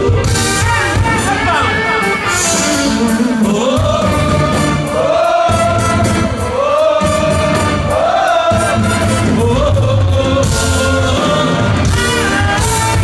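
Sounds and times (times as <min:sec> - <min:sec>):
man singing: 0:00.0 - 0:04.7, 0:08.5 - 0:13.0
live band playing: 0:00.0 - 0:13.0.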